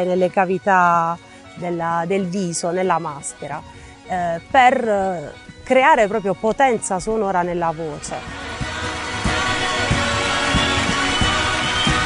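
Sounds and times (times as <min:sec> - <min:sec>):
folk band music: 0:00.8 - 0:12.0
steady drum beat: 0:08.0 - 0:12.0.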